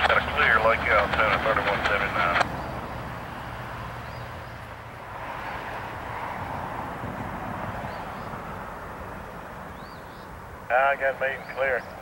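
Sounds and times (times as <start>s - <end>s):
freight cars rumbling on track: 0.0s - 12.0s.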